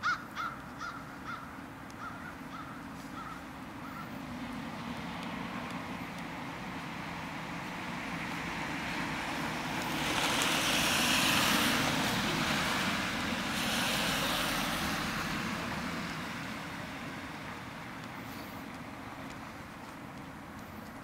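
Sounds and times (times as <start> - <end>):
road traffic passing: 0.0 - 21.0.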